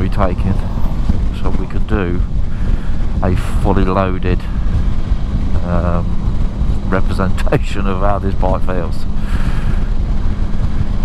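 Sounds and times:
motorcycle engine cruising: 0:00.0 - 0:11.0
wind rushing over microphone: 0:00.0 - 0:11.0.

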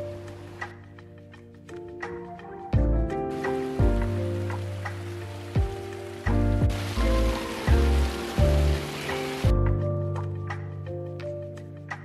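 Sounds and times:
music with deep bass beat: 0:02.8 - 0:12.0
stream running and splashing: 0:03.3 - 0:09.6.

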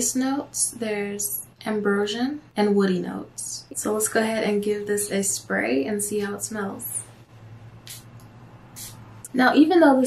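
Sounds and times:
perfume sprayer hissing: 0:08.7 - 0:09.0.

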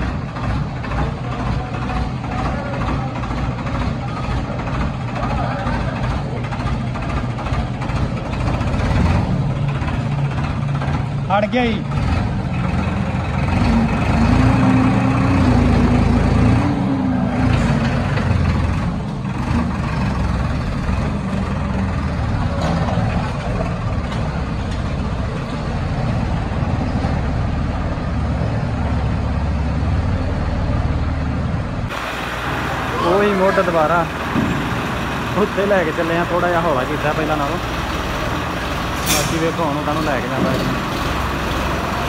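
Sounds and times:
tractor diesel engine straining: 0:00.0 - 0:42.0.

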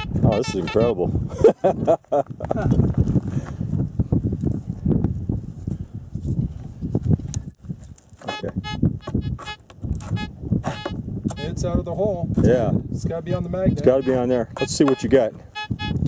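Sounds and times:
metal detector pulsing tone: 0:00.0 - 0:01.0, 0:08.3 - 0:11.6, 0:13.7 - 0:16.0.

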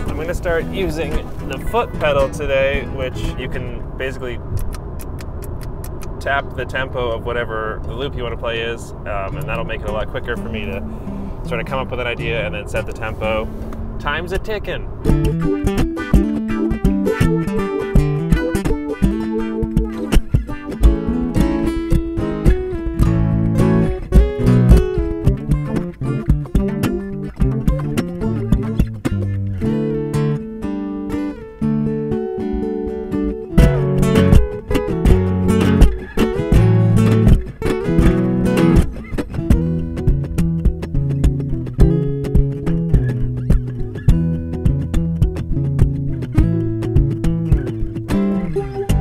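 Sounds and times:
plucked guitar loops: 0:00.0 - 0:49.0.

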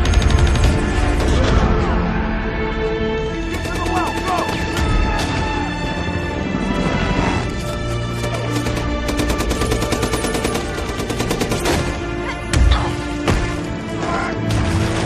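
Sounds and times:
film music score: 0:00.0 - 0:15.0
rapid automatic gunfire: 0:03.5 - 0:04.8, 0:08.2 - 0:12.0.

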